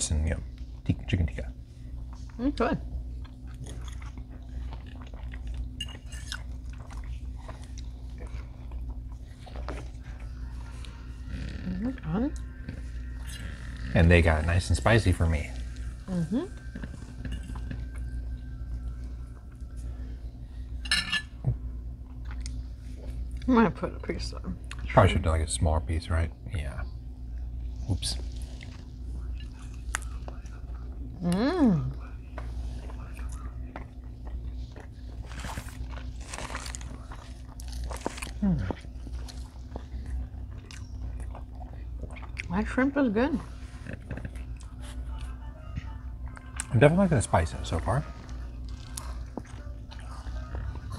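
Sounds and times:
low room hum: 0.0 - 50.9
people chewing food: 0.0 - 50.9
fork clinking on plate: 20.8 - 21.3.

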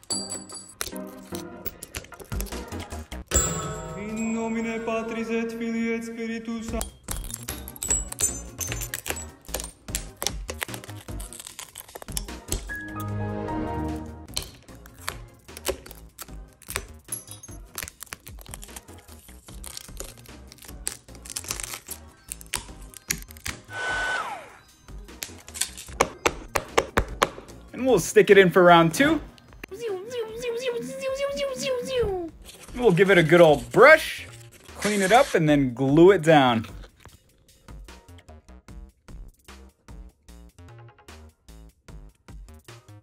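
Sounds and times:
background music: 0.0 - 43.0
glass cracking and crunching: 0.7 - 2.8, 6.8 - 12.7, 14.3 - 23.6.

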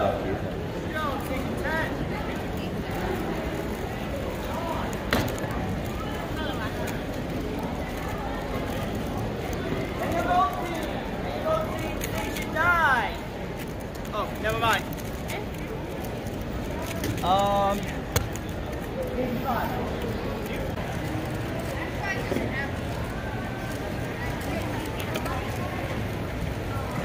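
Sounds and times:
crowd chatter in hall: 0.0 - 27.0.

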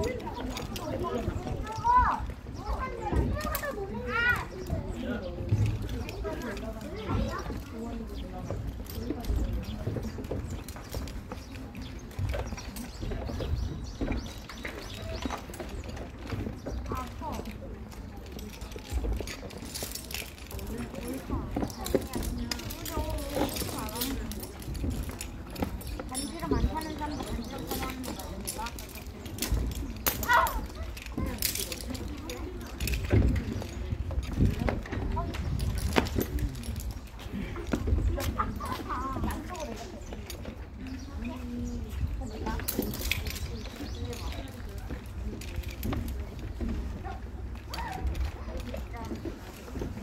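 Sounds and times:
children chattering: 0.0 - 50.0
people talking: 0.0 - 50.0.

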